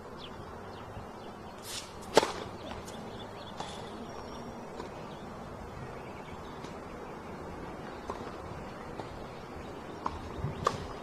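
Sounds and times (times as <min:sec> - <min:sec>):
racket swish: 0:01.6 - 0:02.5
tennis ball struck by racket: 0:01.6 - 0:02.9.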